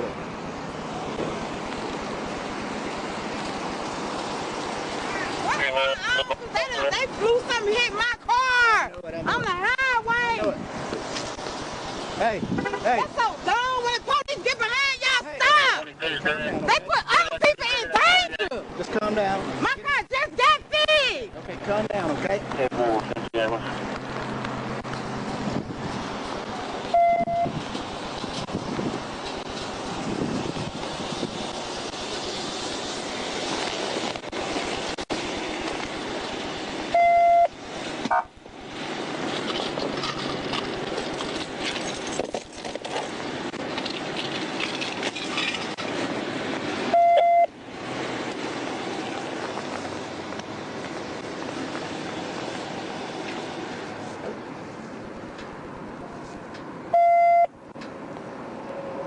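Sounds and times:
street traffic noise: 0.0 - 59.0
censor bleep: 26.9 - 27.5, 36.9 - 37.5, 46.9 - 47.5, 56.9 - 57.5.

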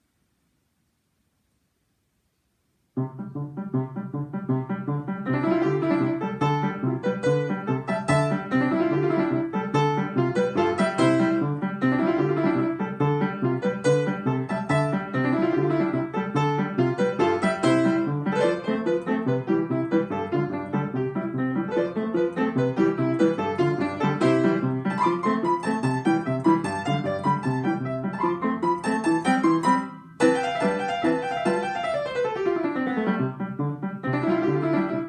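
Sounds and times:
upright piano fast flowing notes: 3.0 - 35.0.

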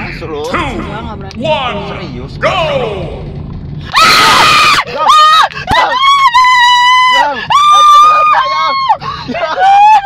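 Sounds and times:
woman screaming: 3.9 - 10.0.

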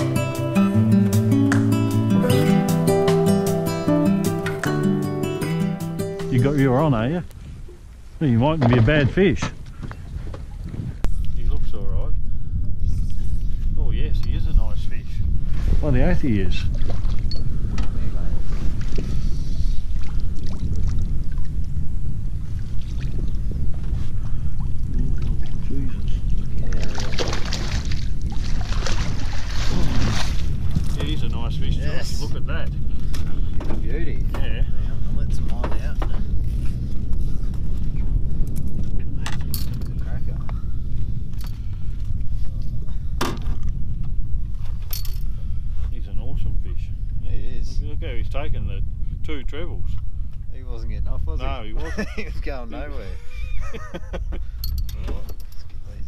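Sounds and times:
low rumble: 6.3 - 56.0
fish splashing in water: 26.7 - 30.6.

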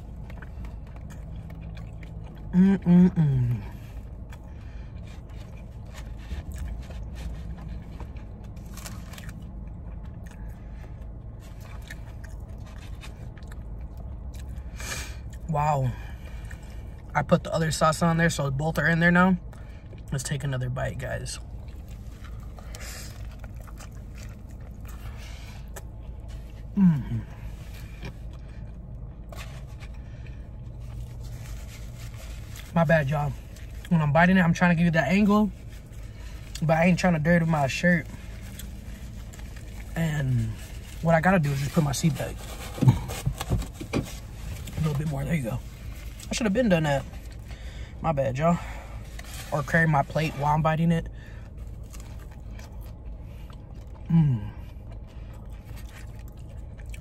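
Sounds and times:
man chewing: 0.0 - 15.5, 16.1 - 17.1, 21.4 - 32.7, 38.0 - 46.3, 51.1 - 57.0
low hum inside car: 0.0 - 57.0
food scraping and squishing: 3.8 - 15.4, 19.4 - 57.0.

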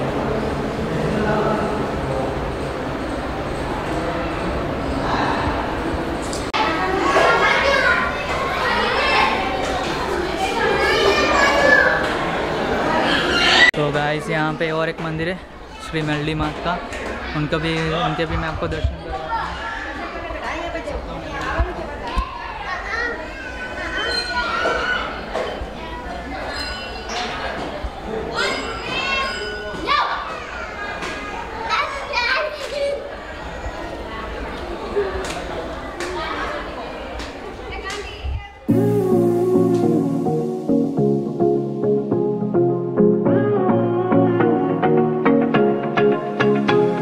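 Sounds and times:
children talking and calling out: 3.9 - 14.9, 16.8 - 41.7.

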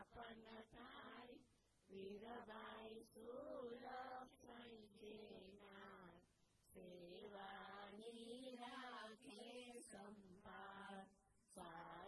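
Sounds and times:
faint devotional chanting: 0.0 - 12.0.

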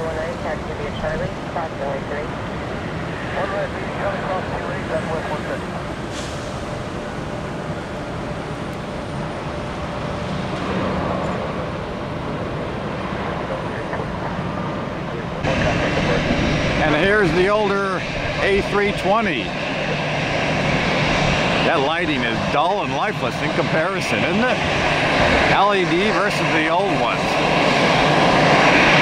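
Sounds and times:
jet engines rumbling: 0.0 - 29.0
road traffic hum: 0.0 - 29.0.

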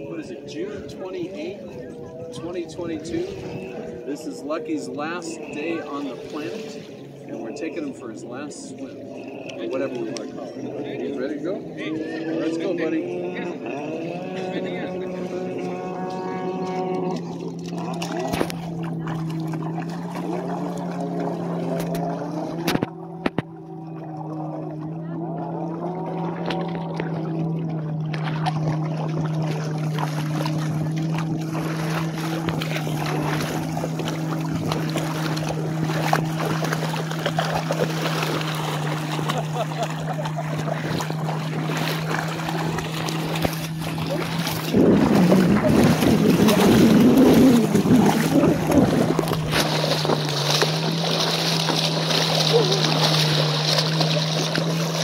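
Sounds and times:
water splashing around legs: 0.0 - 10.8, 11.6 - 55.0
watercraft engine idling: 0.0 - 55.0.

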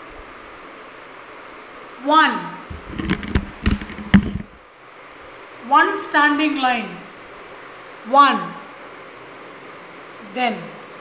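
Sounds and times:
object clattering on desk: 2.7 - 4.6.

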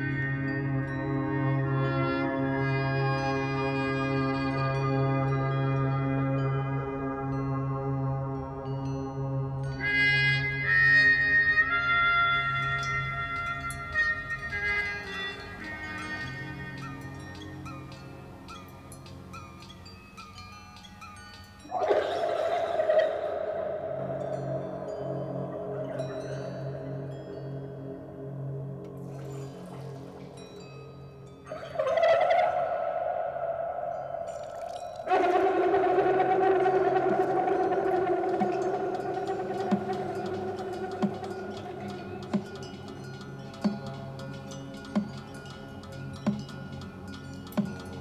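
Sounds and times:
steady low drone: 21.7 - 32.0, 32.7 - 44.8
trumpet playing long high notes: 34.4 - 42.7.

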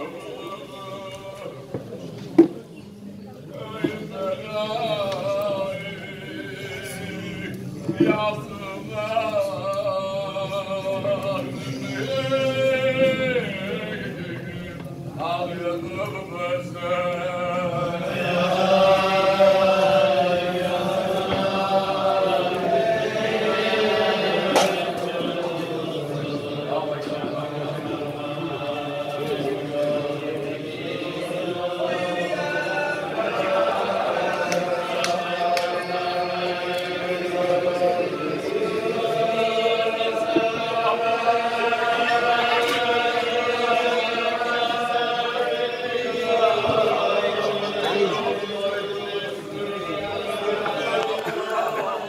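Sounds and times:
men singing together: 3.6 - 52.0.

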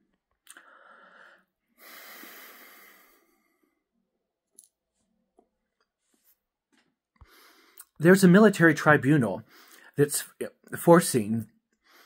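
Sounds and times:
man breathing: 0.5 - 4.0, 7.2 - 7.9, 9.4 - 10.0, 11.8 - 12.0.

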